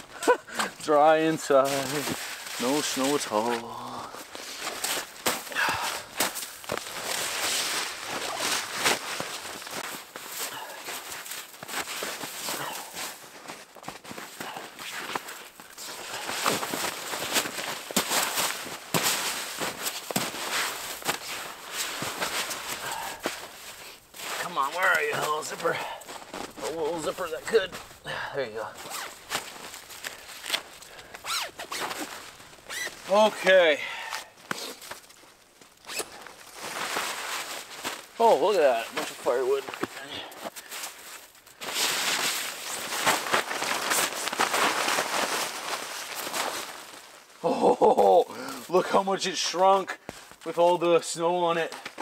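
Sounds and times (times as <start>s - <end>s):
person speaking: 0.2s - 4.3s, 24.3s - 29.2s, 33.1s - 34.2s, 38.2s - 40.5s
boots crunching in snow: 0.2s - 47.6s.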